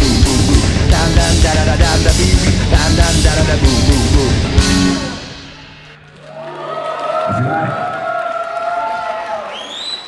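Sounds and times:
crowd cheering and whooping: 6.2s - 10.0s
rising whistle: 9.5s - 10.0s.

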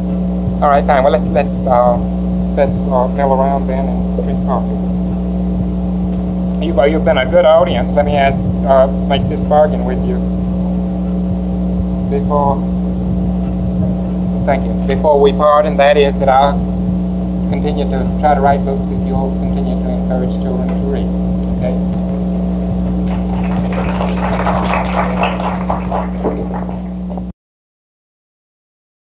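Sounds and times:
electrical hum: 0.0s - 27.3s
faint steady tones: 0.0s - 27.3s
audience applauding: 23.0s - 27.3s.

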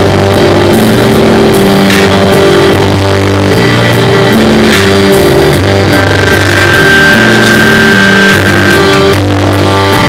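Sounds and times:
live band music: 0.0s - 10.0s
bowed violin: 1.0s - 10.0s.

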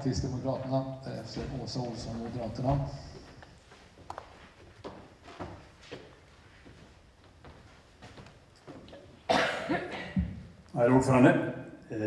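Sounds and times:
man coughing into microphone: 9.3s - 10.3s.

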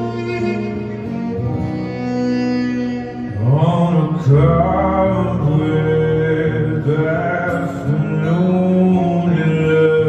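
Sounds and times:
violin playing held notes: 0.0s - 5.9s
acoustic guitar: 0.0s - 10.0s
man singing low: 3.3s - 10.0s.

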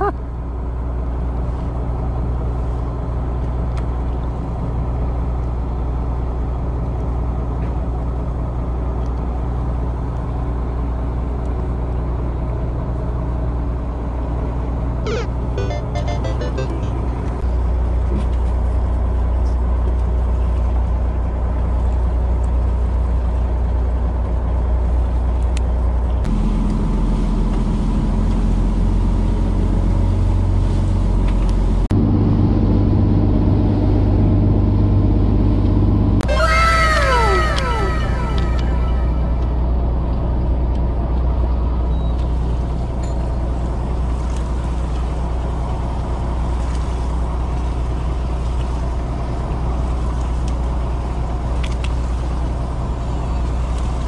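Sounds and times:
boat engine droning: 12.2s - 27.6s, 36.1s - 41.1s.

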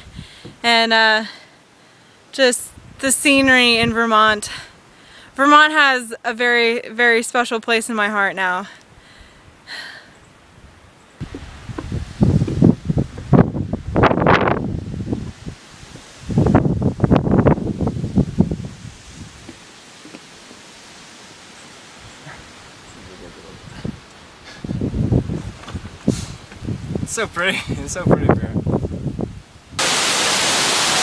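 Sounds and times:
wind gusting over microphone: 0.0s - 0.7s, 10.5s - 19.5s, 22.0s - 31.0s.

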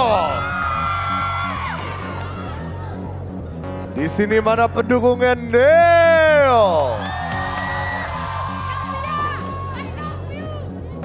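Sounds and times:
studio audience cheering: 0.0s - 3.0s, 6.4s - 10.0s
background music with low pulse: 0.0s - 11.0s.

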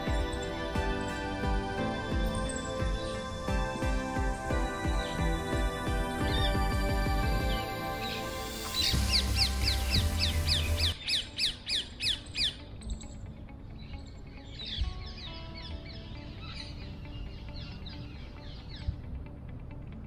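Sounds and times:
background music with bass line: 0.0s - 13.9s.

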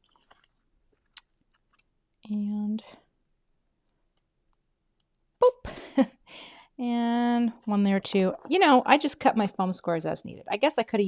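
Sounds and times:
faint crinkling and small clicks: 0.0s - 2.3s, 3.3s - 5.3s.

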